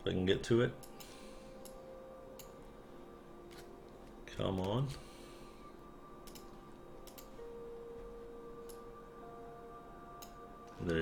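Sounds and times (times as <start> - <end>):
faint steady background tones: 0.0 - 11.0
computer mouse clicks: 6.2 - 7.3.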